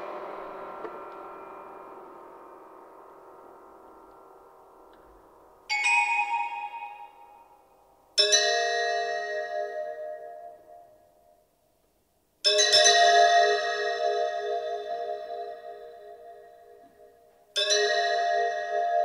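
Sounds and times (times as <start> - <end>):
held ensemble chord: 0.0 - 5.7
bell-like chords: 0.0 - 11.5, 12.4 - 19.0.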